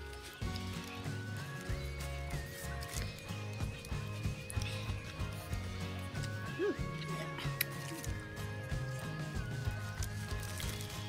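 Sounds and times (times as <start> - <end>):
music with steady low beat: 0.0 - 11.0.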